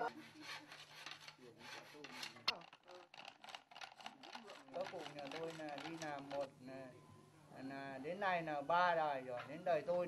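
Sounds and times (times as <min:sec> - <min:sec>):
bow saw rasping through bamboo: 0:00.0 - 0:06.5.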